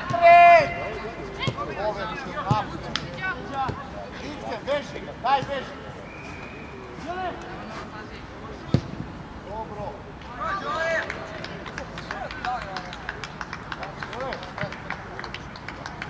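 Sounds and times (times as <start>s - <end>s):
voices shouting and calling: 0.0s - 11.6s.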